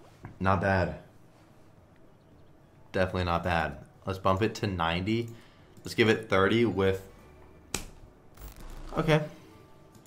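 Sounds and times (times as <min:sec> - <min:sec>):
faint game music: 0:00.0 - 0:10.0.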